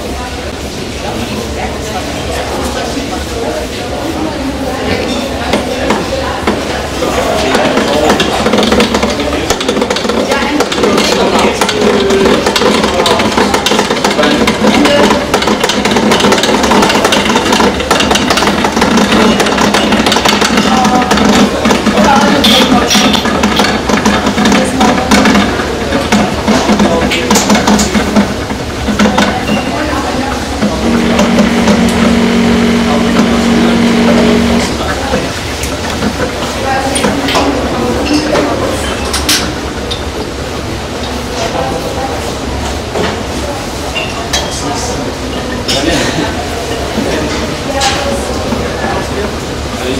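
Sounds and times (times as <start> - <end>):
steam bubbling and crackling: 5.8 - 43.6
low hum: 30.6 - 35.4.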